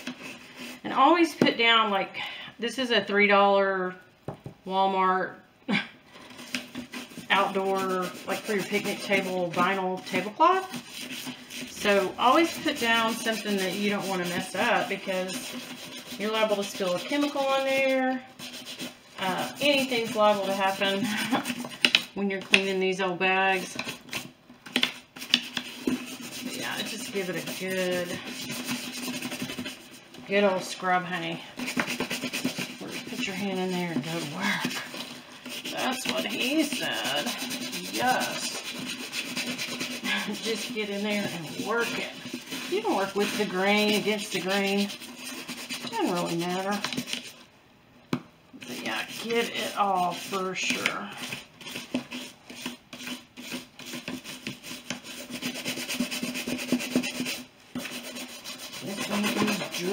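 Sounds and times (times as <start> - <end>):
brush scrubbing wet leather: 0.0 - 1.4, 6.8 - 24.3, 25.0 - 47.4, 48.6 - 59.9.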